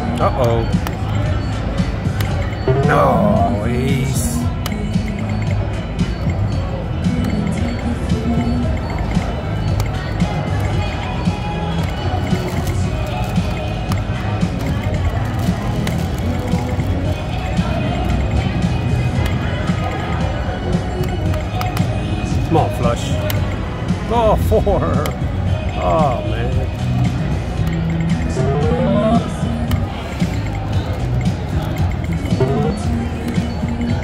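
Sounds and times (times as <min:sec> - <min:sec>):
background music with low beat: 0:00.0 - 0:34.0
murmur of voices: 0:00.0 - 0:34.0
video poker machine blips: 0:00.1 - 0:10.0, 0:27.6 - 0:30.7, 0:31.6 - 0:34.0.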